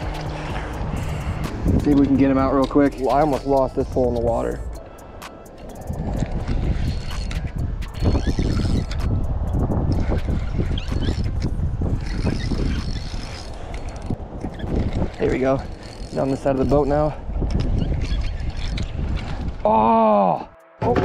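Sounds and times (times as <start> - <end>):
fishing reel clicking: 0.0 - 19.6
wind on microphone: 0.0 - 21.0.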